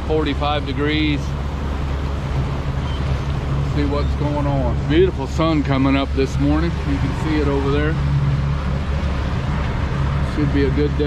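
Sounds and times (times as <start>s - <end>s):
outboard engine drone: 0.0s - 11.0s
water noise: 0.0s - 11.0s
wind: 0.0s - 11.0s.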